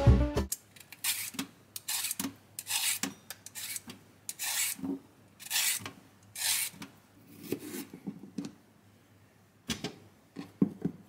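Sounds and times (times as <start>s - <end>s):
peeler scraping a carrot: 0.9s - 6.8s.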